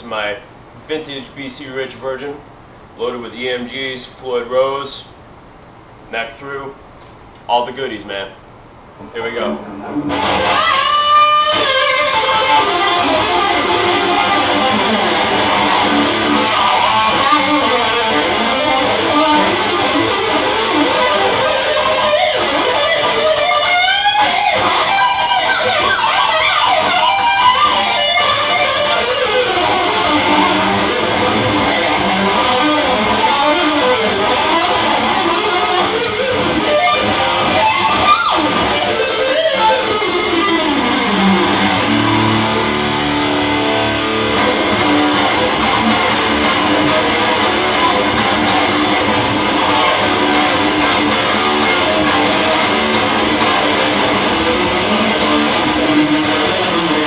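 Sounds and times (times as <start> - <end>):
electric guitar shred solo: 9.0 - 57.0.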